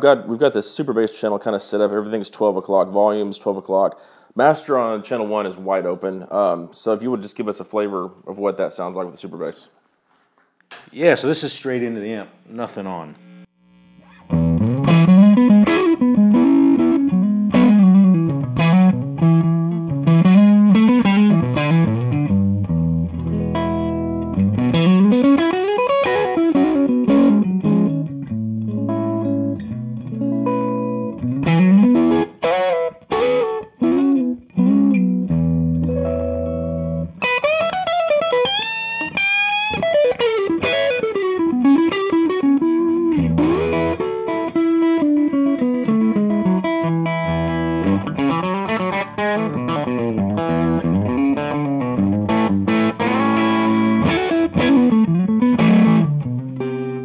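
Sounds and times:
clean electric guitar: 0:12.3 - 0:57.0.

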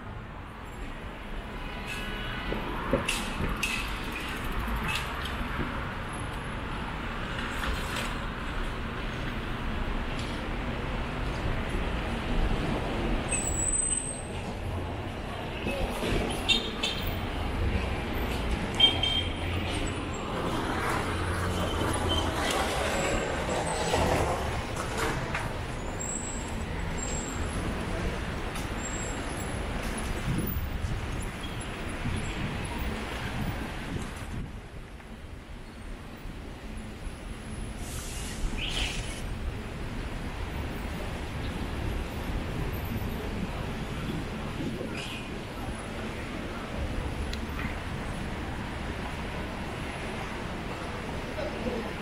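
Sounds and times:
vehicles passing close by: 0:00.2 - 0:52.0.

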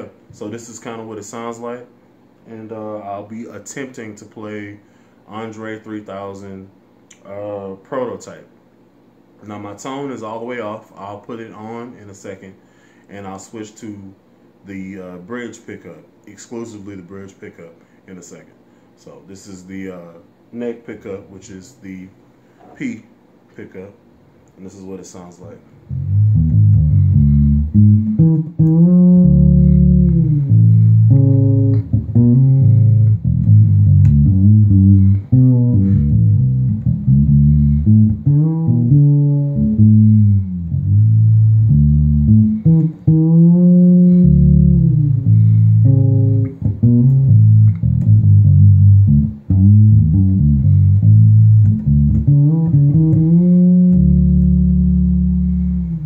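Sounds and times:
fretless electric bass with slides: 0:25.8 - 0:56.0.

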